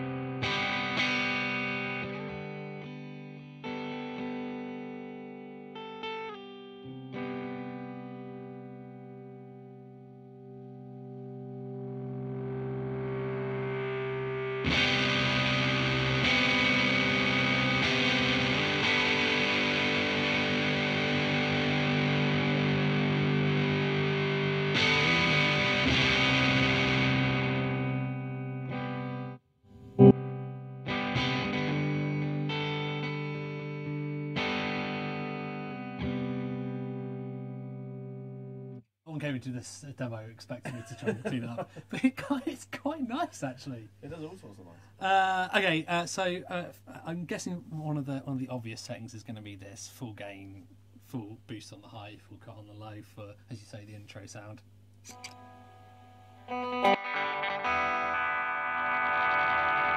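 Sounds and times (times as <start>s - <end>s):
distorted electric guitar chords: 0.0s - 38.8s, 54.7s - 59.9s
electric guitar chords ringing: 0.0s - 38.8s, 55.1s - 59.9s.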